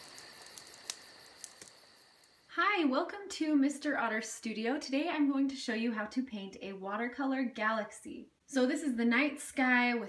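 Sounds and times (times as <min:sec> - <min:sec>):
crickets chirping: 0:00.0 - 0:02.6
faint clicks: 0:00.1 - 0:02.4.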